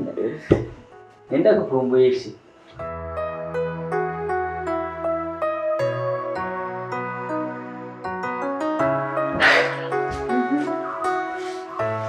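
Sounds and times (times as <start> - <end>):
soft music with held notes: 0.0 - 12.0.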